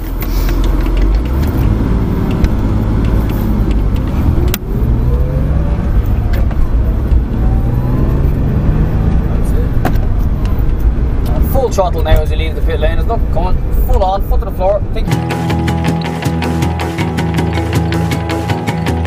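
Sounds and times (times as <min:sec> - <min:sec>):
car engine from inside cabin: 0:00.0 - 0:19.0.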